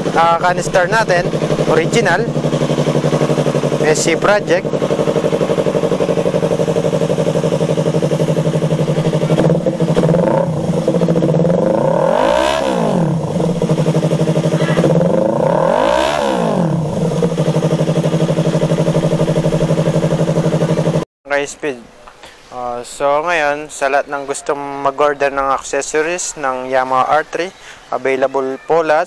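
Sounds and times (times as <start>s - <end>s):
motorcycle engine idling: 0.0s - 21.0s
engine revving: 0.0s - 21.1s.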